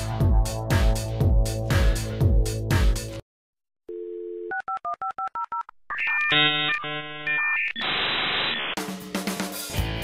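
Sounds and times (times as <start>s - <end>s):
music: 0.0s - 3.2s, 8.8s - 10.0s
telephone dial tone: 3.9s - 7.6s
touch-tone dialing beeps: 3.9s - 7.9s
harsh buzzing electronic tone: 6.3s - 8.8s.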